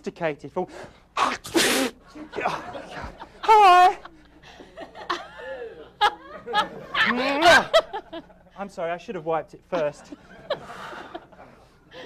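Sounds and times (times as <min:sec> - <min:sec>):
man sneezing: 0:00.7 - 0:02.7.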